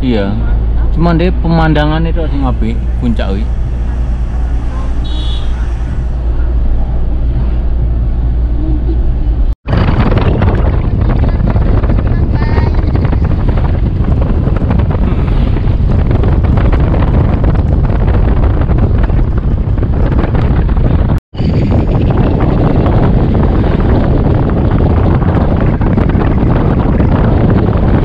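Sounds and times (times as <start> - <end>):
car engine and road noise: 0.0 - 28.0
wind buffeting on microphone: 0.0 - 28.0.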